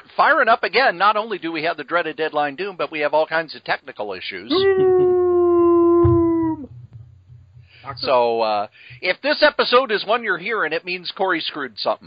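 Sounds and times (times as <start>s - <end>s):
long howl: 4.5s - 6.8s.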